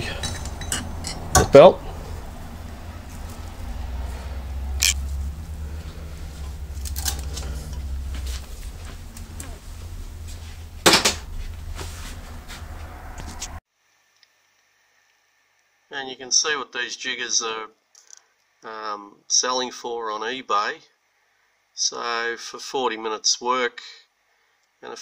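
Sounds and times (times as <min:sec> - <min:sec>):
low hum: 0:00.0 - 0:13.6.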